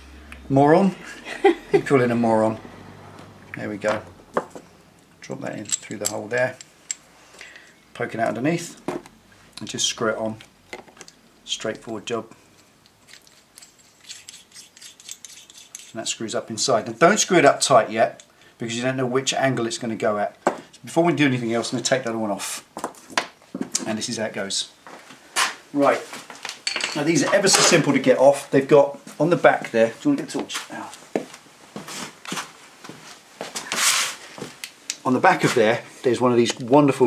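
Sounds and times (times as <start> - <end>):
bolt threads scratching: 3.5 - 7.1, 12.5 - 16.1
light clicks and knocks of tools: 5.0 - 7.8.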